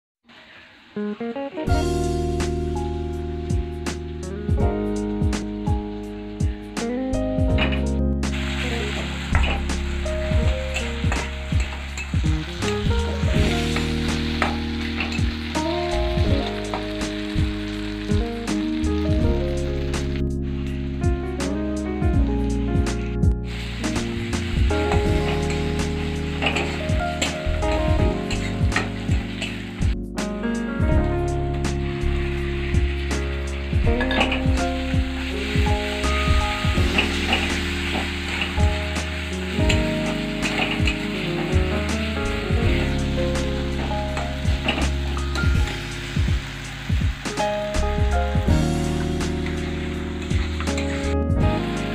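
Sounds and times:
vegetables sizzling in oil: 0:00.3 - 0:21.0, 0:22.4 - 0:30.0, 0:31.4 - 0:51.9
background music: 0:01.0 - 0:51.9.

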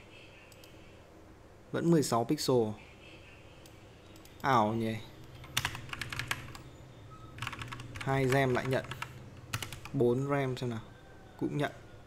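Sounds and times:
computer keyboard typing: 0:05.2 - 0:06.7, 0:07.4 - 0:10.0.

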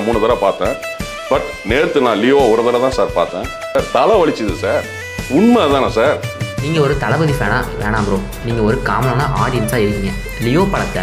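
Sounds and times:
background music with guitar: 0:00.0 - 0:11.0
person speaking: 0:03.8 - 0:11.0.

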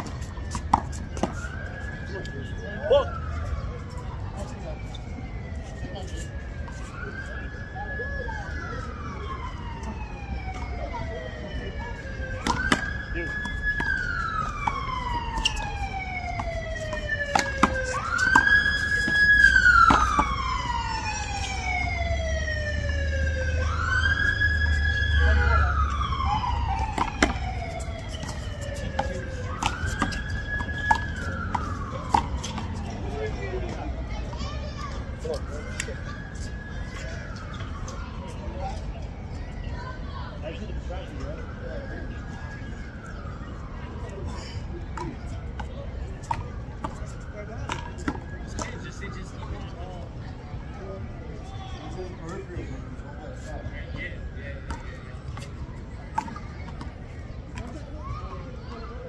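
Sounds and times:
emergency vehicle siren wailing: 0:00.0 - 0:59.0.

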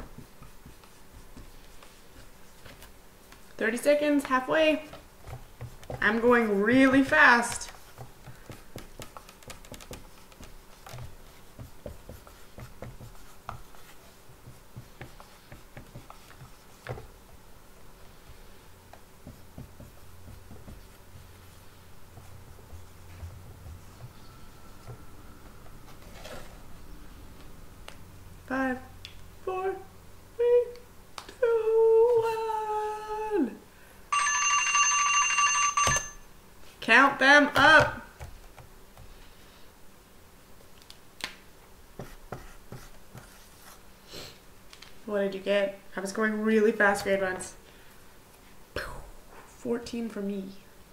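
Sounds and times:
marker writing on whiteboard: 0:04.2 - 0:17.1, 0:42.0 - 0:43.8
woman's drawn-out vocal sound: 0:31.4 - 0:33.6
timer alarm ringing: 0:34.1 - 0:36.3.

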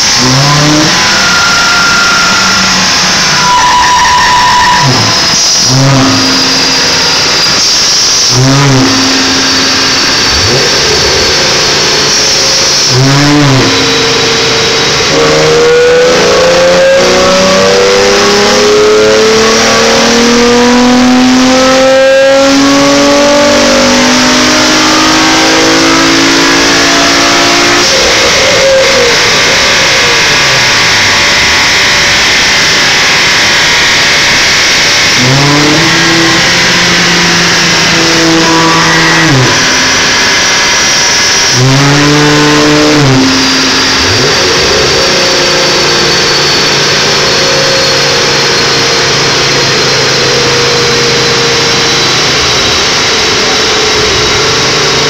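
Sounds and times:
car engine revving on dyno: 0:00.0 - 0:55.0.

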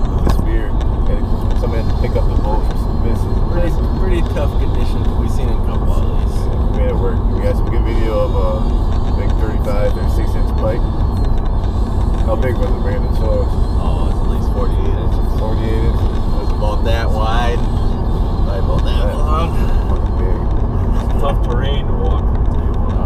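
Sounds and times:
car road and engine noise: 0:00.0 - 0:23.0
quiet voices talking: 0:00.0 - 0:23.0.

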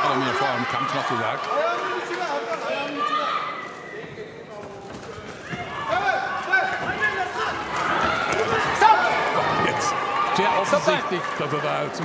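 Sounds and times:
crowd shouting: 0:05.6 - 0:11.9.

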